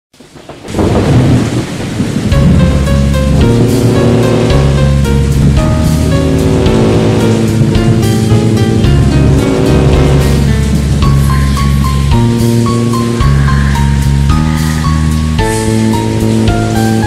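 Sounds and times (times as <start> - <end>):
rain: 0.1 - 17.0
thunder rumble: 0.2 - 17.0
music with heavy bass: 2.3 - 17.0.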